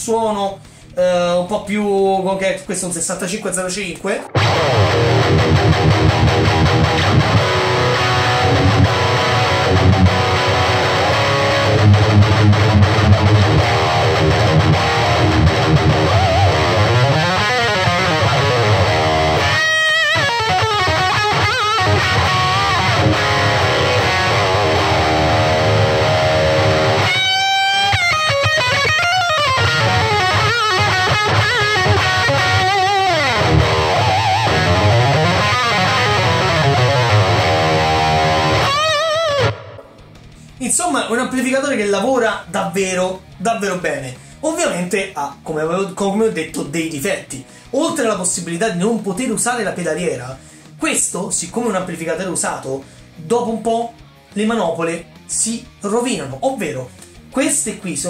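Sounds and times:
distorted electric guitar riffing: 0:04.0 - 0:44.8, 0:56.8 - 0:58.0
high gliding guitar notes: 0:04.2 - 0:40.5.

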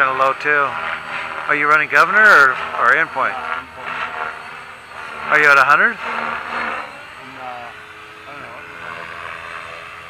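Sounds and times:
rc helicopter motor whine: 0:00.0 - 0:10.0.

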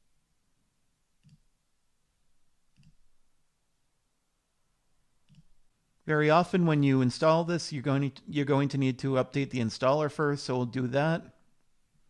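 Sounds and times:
computer mouse clicks: 0:01.2 - 0:01.5, 0:02.7 - 0:03.0, 0:05.2 - 0:05.6.

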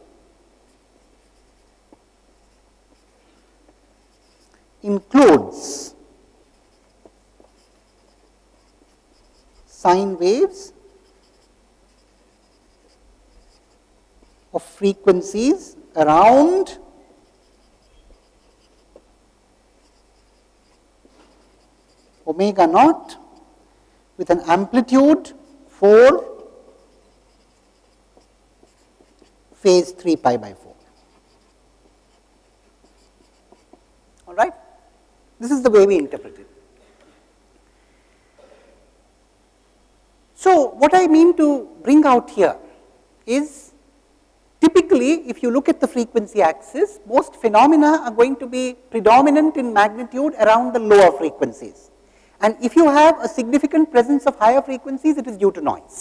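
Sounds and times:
marker scratching on paper: 0:00.6 - 0:19.1, 0:19.7 - 0:23.5, 0:24.3 - 0:33.9.

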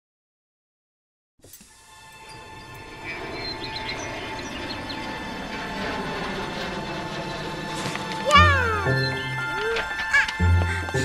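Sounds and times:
background music with low notes: 0:01.6 - 0:11.0
child's high-pitched cry: 0:08.3 - 0:09.0, 0:09.6 - 0:10.4.

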